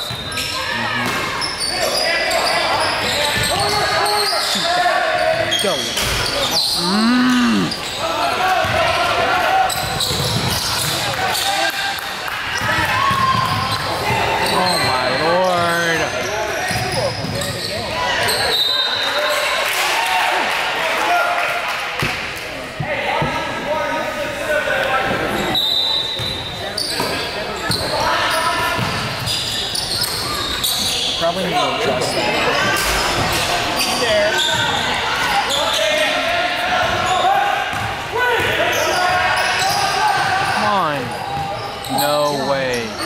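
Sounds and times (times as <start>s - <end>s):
shoe squeaks: 0.0s - 8.1s, 13.4s - 19.4s, 25.3s - 32.2s, 33.7s - 36.2s
people shouting in gym: 0.0s - 17.1s, 32.2s - 42.0s
basketball bouncing on court: 8.6s - 8.9s, 9.8s - 11.1s, 12.6s - 14.1s, 28.8s - 29.2s, 37.7s - 39.2s.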